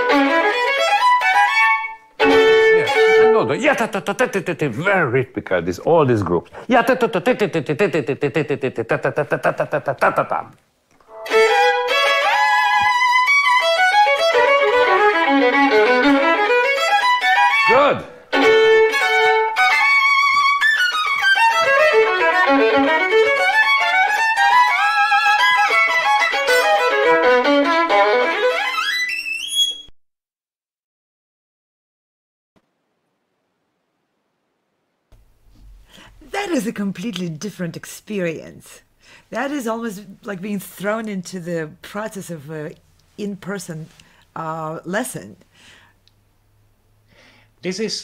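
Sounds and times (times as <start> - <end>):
solo violin playing: 0.0 - 4.0, 11.0 - 29.9
person speaking: 2.2 - 10.6, 17.7 - 18.2, 36.0 - 45.4.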